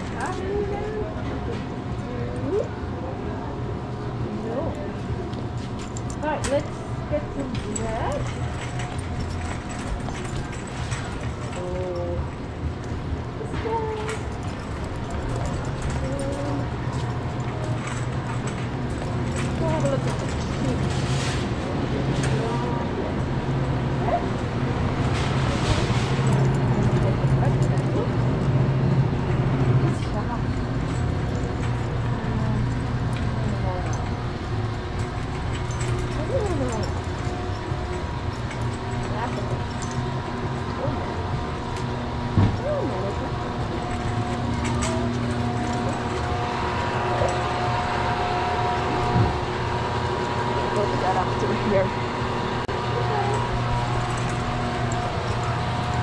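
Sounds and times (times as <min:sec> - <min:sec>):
shopping cart rolling: 0:00.0 - 0:03.1, 0:04.5 - 0:56.0
refrigeration units humming: 0:00.0 - 0:56.0.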